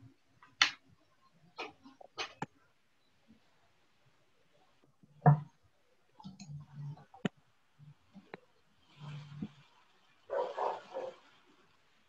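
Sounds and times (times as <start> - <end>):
dog barking: 10.3 - 11.2.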